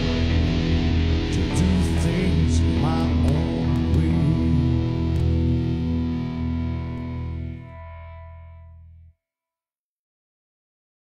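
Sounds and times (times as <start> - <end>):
country song on guitars and bass: 0.0 - 8.9.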